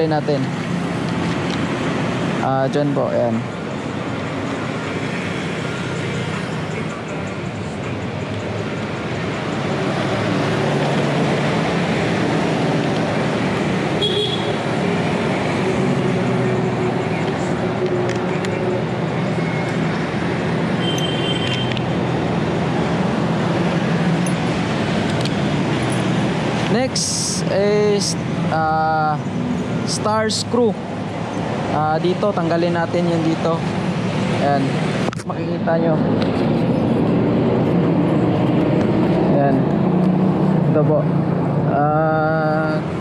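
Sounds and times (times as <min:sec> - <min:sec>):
road traffic passing: 0:00.0 - 0:43.0.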